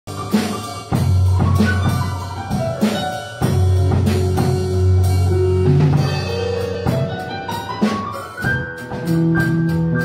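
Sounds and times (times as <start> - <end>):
drums: 0.1 - 10.0
electric guitar: 0.1 - 10.0
keyboard: 0.1 - 10.0.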